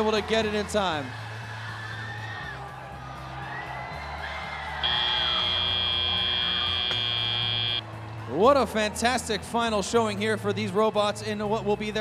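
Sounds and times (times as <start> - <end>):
crowd noise: 4.6 - 8.8
arena music: 4.8 - 7.8
high electronic buzzer: 4.8 - 7.8.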